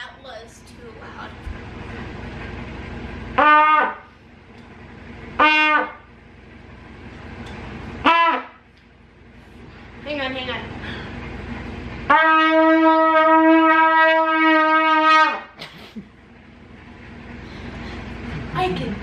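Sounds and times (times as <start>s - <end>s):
trumpet blowing short loud notes: 3.4s - 4.1s, 5.4s - 6.1s, 8.0s - 8.6s, 12.1s - 15.5s.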